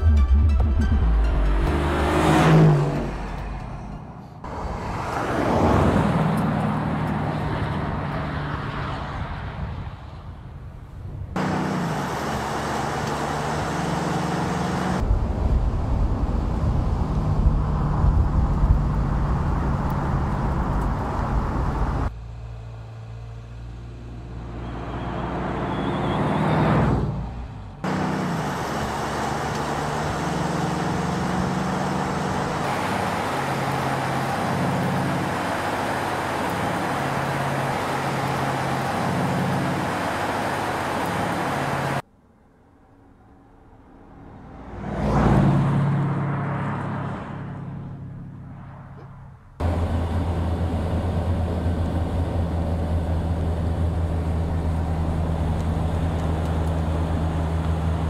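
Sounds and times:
car approaching: 0.0s - 58.0s
car engine running at speed: 49.0s - 58.0s.

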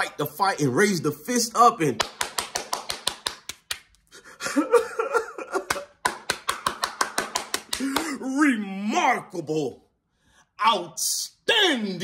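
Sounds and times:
person clapping quickly: 2.0s - 4.0s, 5.6s - 8.2s
man vocalizing: 7.7s - 9.4s.

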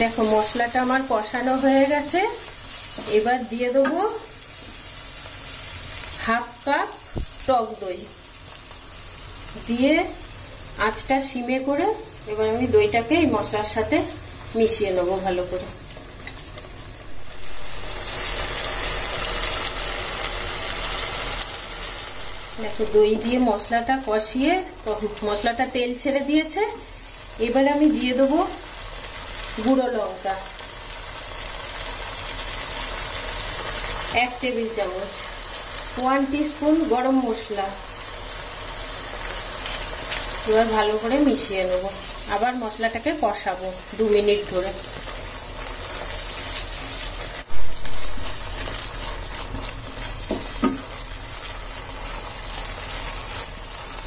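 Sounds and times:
paste sizzling in oil: 0.0s - 54.0s
spatula stirring in frying pan: 44.8s - 54.0s.

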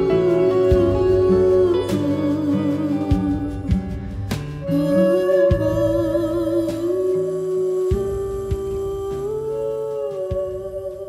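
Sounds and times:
soft low plucked notes: 0.0s - 11.0s
hummed lullaby vocal: 4.7s - 11.0s.

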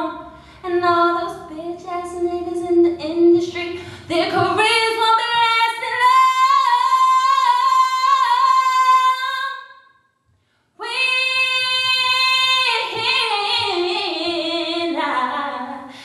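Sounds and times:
woman singing a cappella: 0.0s - 9.8s, 10.8s - 16.0s.

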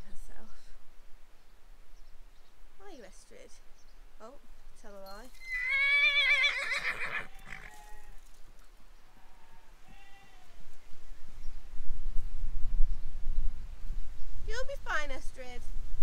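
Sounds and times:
horse whinnying: 5.3s - 8.3s.

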